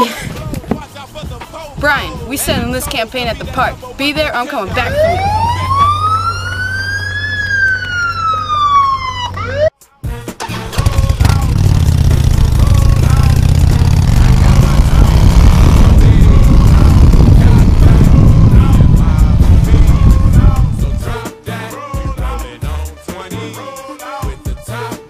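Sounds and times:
siren wailing: 4.8s - 9.8s
minibike engine running: 10.7s - 20.8s.

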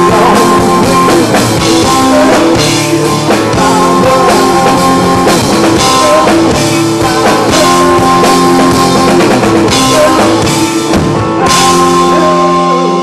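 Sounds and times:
drum kit with cymbal crashes: 0.0s - 13.0s
electric guitar chords: 0.0s - 13.0s.

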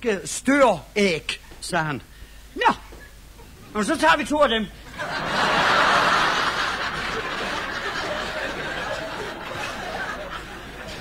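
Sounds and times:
audience laughing: 4.9s - 11.0s.

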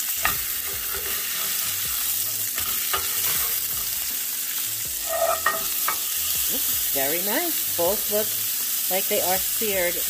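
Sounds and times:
steak sizzling in a pan: 0.0s - 10.0s
tongs tapping: 5.1s - 6.0s.

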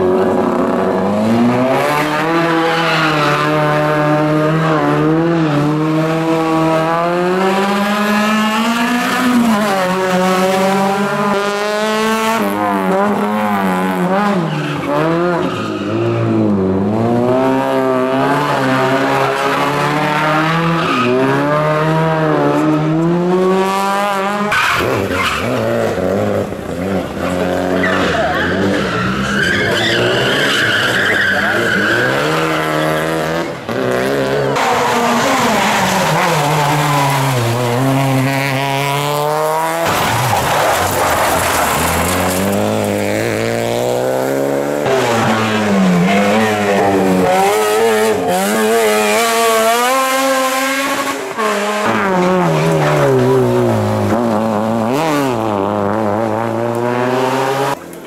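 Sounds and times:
rally car engines revving: 0.0s - 58.0s
tyre squeal: 27.7s - 33.2s.

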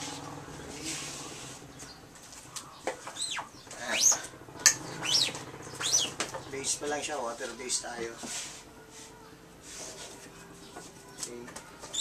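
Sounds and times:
squeegee squeaking: 3.0s - 4.3s.

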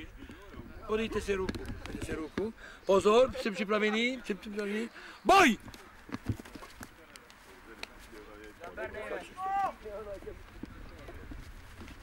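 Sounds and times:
high-pitched shouts of boys: 9.3s - 9.8s.

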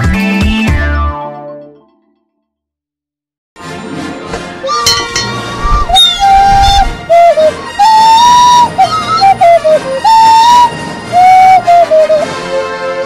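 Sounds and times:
person whistling a tune: 5.6s - 13.0s.

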